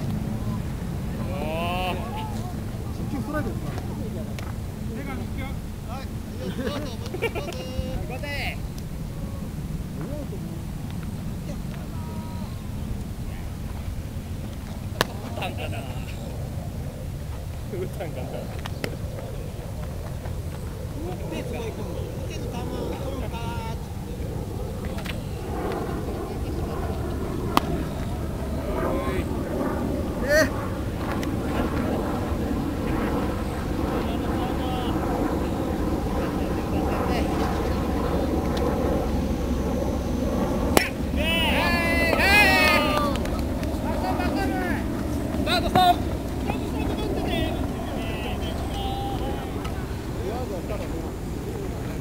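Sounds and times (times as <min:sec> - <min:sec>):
voices calling out: 0:00.0 - 0:13.6, 0:14.8 - 0:52.0
wind rumble on microphone: 0:00.0 - 0:52.0
sharp crack of ball: 0:27.5 - 0:27.8.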